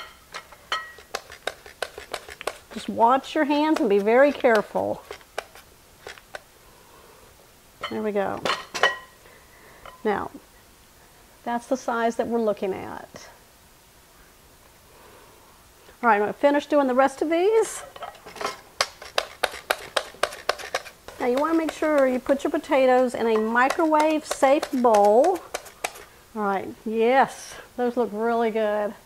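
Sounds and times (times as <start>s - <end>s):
mandoline slicing potatoes: 0.4s - 6.5s, 18.3s - 26.1s.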